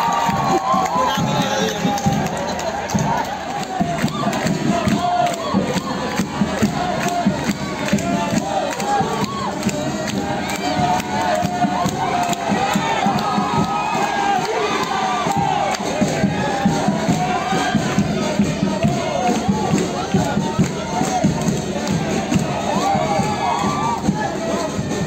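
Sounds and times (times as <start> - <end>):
crowd din: 0.0 - 25.0
stadium crowd cheering and shouting: 0.0 - 25.0.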